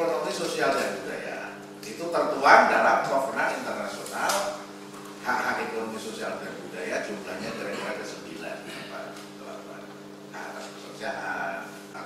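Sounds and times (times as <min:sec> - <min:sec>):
man speaking emphatically: 0:05.3 - 0:08.7.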